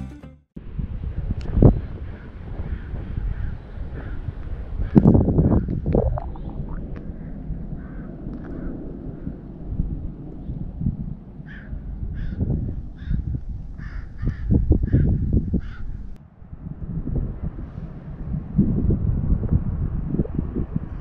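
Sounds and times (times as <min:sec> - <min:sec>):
uneven low rumble: 0:00.6 - 0:21.0.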